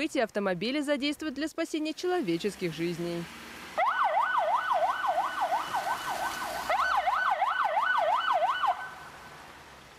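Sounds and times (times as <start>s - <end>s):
ambulance siren yelping: 3.8s - 9.0s.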